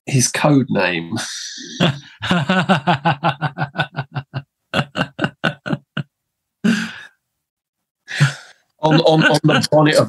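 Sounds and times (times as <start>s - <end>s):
person laughing: 1.6s - 7.1s.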